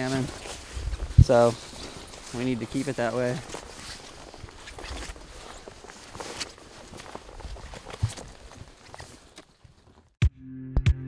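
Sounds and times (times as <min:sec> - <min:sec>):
plants rustling: 0:00.0 - 0:10.1
footsteps in undergrowth: 0:00.0 - 0:10.2.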